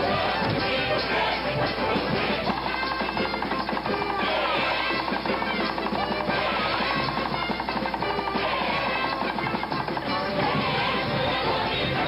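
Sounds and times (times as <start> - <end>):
folk dance music ensemble: 0.0 - 12.0.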